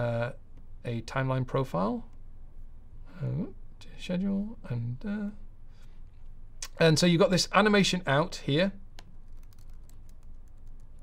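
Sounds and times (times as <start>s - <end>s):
keyboard keys clicking: 9.3s - 11.0s.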